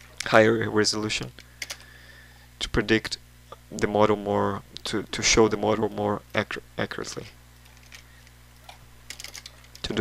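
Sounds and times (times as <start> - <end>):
faint low hum: 0.0 - 10.0
computer keyboard keystrokes: 9.1 - 9.9.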